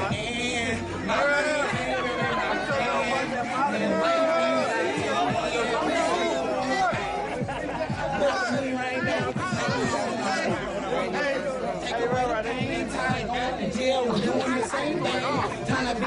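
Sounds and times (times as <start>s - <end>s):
people talking over one another: 0.0s - 16.0s.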